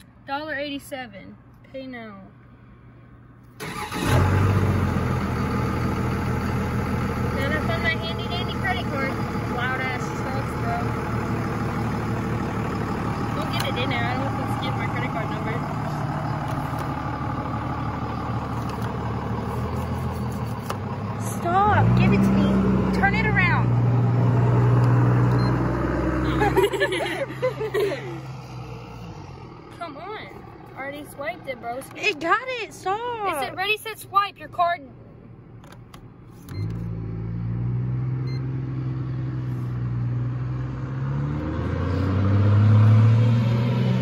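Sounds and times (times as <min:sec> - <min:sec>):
vehicle engine running and revving: 0:04.0 - 0:31.9, 0:36.5 - 0:44.0.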